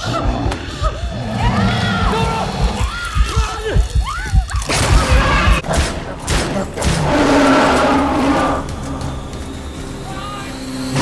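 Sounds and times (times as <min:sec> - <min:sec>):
steady drone: 0:07.0 - 0:11.0.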